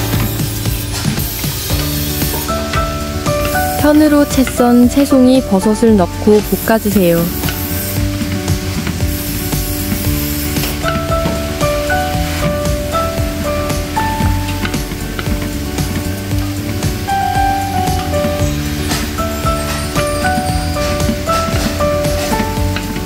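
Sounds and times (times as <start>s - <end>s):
light melodic background music: 0.0s - 23.0s
onions and mushrooms sizzling: 0.0s - 23.0s
wooden paddles scraping a wok: 0.0s - 23.0s.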